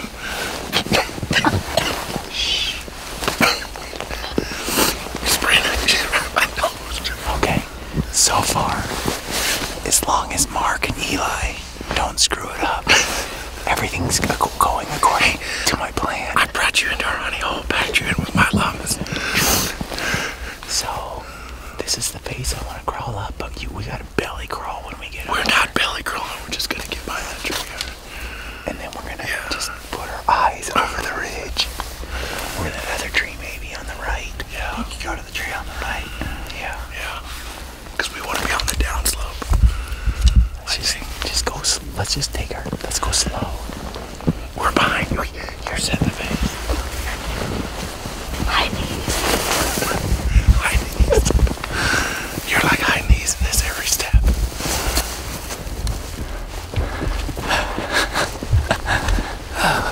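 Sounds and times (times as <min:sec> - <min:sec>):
men whispering: 0:00.0 - 0:59.9.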